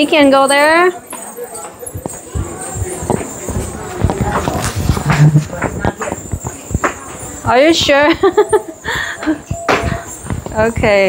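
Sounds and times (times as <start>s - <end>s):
footsteps on hard floor: 1.1s - 7.6s, 9.2s - 11.0s.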